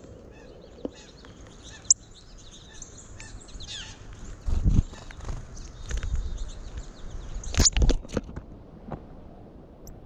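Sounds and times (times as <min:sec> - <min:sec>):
wild birds chirping: 0:00.0 - 0:08.2.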